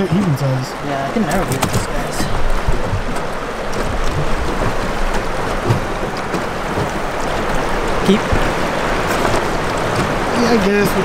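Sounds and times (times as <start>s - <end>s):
river current splashing on boat hull: 0.0s - 11.0s
short low knocks: 1.5s - 10.3s.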